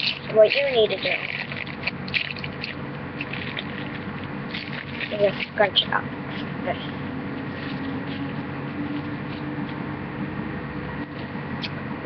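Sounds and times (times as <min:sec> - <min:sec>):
wrapper crinkling: 0:00.0 - 0:05.6
steady low hum: 0:00.0 - 0:12.0.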